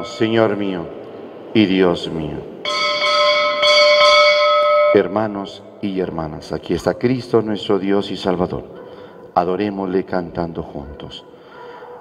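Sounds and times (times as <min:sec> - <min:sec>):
altar bell ringing: 0:00.0 - 0:00.6, 0:02.6 - 0:05.8.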